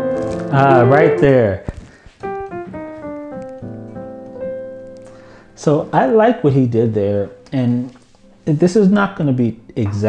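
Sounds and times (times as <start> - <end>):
piano notes and chord: 0.0 - 1.6, 2.2 - 10.0.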